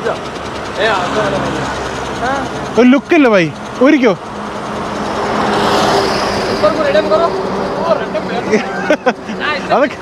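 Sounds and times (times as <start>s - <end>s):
vehicle passing on highway: 0.0s - 10.0s.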